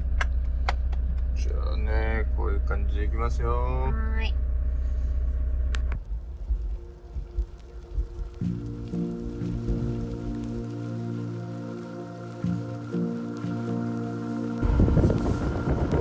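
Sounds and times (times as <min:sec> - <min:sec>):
road noise: 0:00.0 - 0:16.0
van engine rumble: 0:00.0 - 0:16.0
music with sustained tones: 0:06.0 - 0:16.0.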